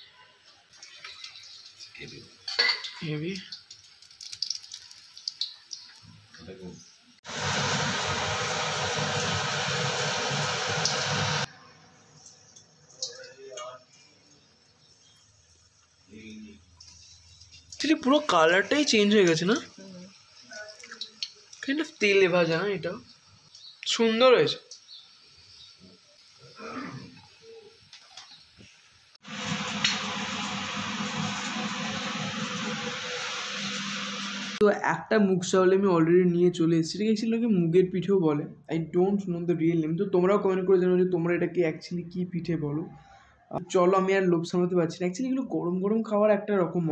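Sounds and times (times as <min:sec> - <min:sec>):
hot oil sizzling: 0:00.1 - 0:34.6.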